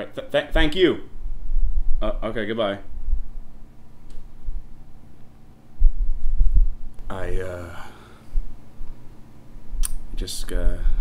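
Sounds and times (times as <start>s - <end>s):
faint steady hum: 0.0s - 11.0s
low dull thumps: 5.7s - 7.2s.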